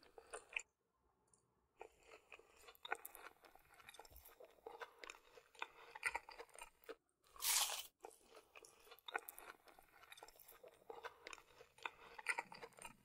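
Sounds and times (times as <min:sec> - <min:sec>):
crunchy chewing: 0:01.8 - 0:13.0.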